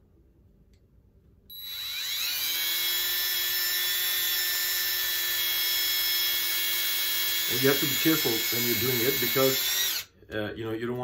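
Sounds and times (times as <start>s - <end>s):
cordless drill whining: 1.5s - 10.1s.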